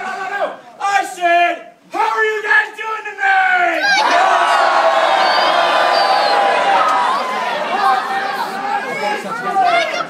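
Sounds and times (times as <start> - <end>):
crowd yelling together: 3.7 - 10.0.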